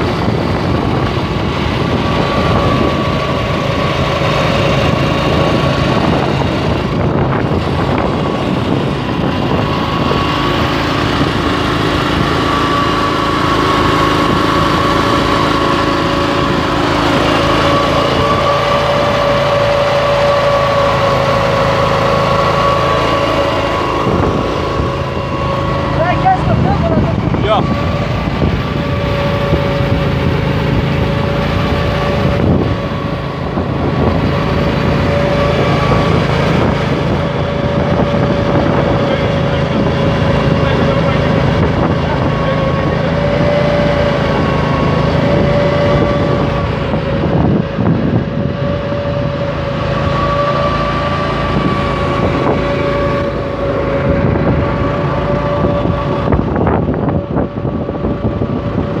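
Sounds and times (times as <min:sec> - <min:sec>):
curbing machine motor drone: 0:00.0 - 0:59.0.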